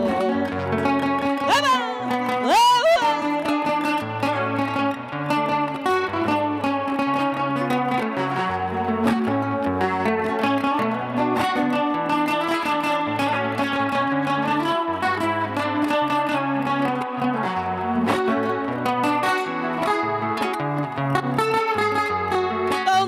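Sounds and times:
acoustic guitars playing: 0.0 - 23.0.

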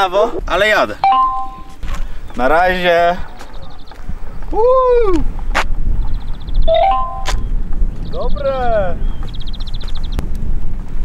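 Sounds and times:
wind rumble on microphone: 0.0 - 11.0
rapid high-pitched pulsing beep: 1.0 - 1.7, 6.7 - 7.4
tones stepping upward: 1.1 - 1.7, 6.7 - 7.4.

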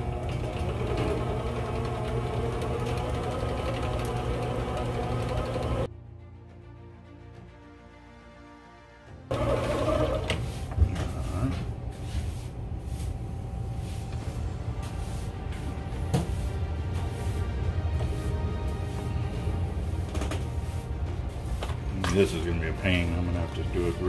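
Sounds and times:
electric spooling motor running: 0.0 - 5.9, 9.3 - 10.4.

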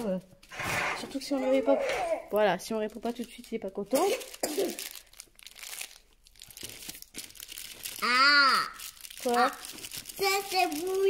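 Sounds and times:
plastic wrapper crinkling: 1.2 - 11.0.

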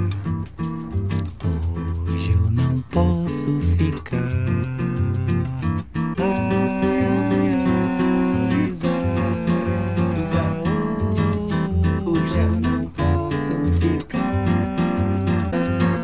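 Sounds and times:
nylon-string acoustic guitar: 0.0 - 16.0
quick percussion beat: 0.0 - 16.0
soft vocal singing: 1.3 - 5.5, 6.2 - 16.0.

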